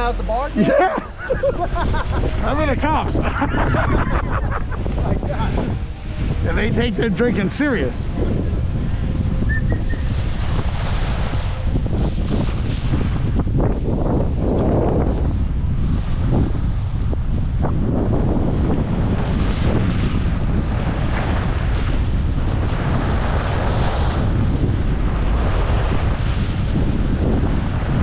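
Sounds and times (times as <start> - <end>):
wind buffeting microphone: 0.0 - 28.0
skis scraping over snow: 9.8 - 17.0, 18.8 - 28.0.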